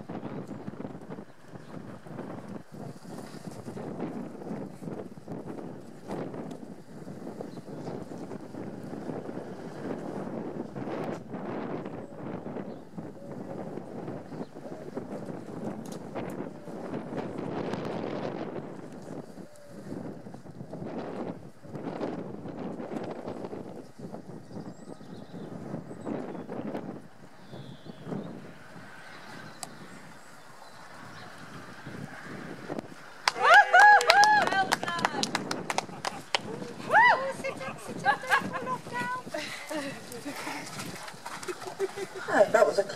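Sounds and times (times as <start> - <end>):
wind buffeting microphone: 0.0 - 42.9
horse hooves cantering: 33.1 - 42.9.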